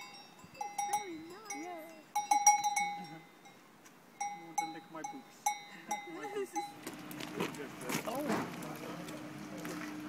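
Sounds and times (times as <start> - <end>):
small bell clanking: 0.0 - 3.6, 4.2 - 6.9.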